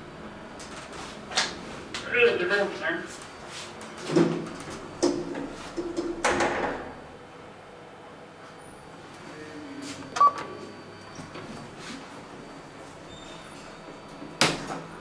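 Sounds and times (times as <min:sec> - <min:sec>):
elevator car clunks: 0:04.0 - 0:07.1
elevator doors sliding open: 0:10.1 - 0:15.0.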